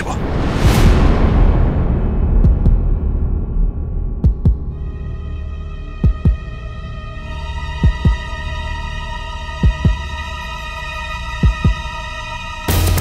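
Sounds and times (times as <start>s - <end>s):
heartbeat-like double thump: 0.6s - 4.7s, 6.0s - 6.4s, 9.6s - 10.0s.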